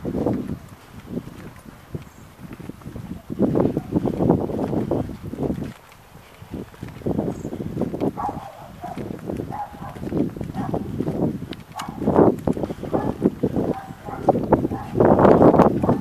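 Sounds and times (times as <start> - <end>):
footsteps on pavement: 0.0 - 16.0
wind buffeting microphone: 0.0 - 16.0.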